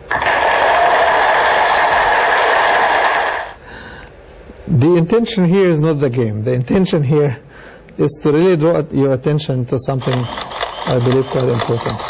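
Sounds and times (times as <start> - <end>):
recorded applause over speakers: 0.1 - 3.5.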